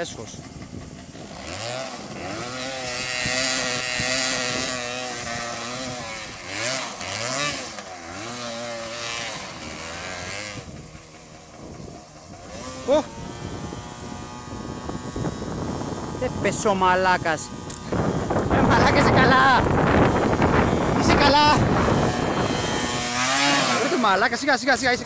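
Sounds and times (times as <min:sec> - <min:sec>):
motorcycle engine revving: 0:00.0 - 0:25.0.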